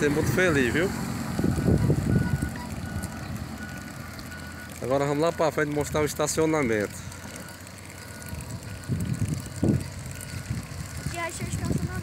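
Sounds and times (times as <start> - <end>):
wind rumbling on microphone: 1.2 - 3.6, 8.3 - 12.0.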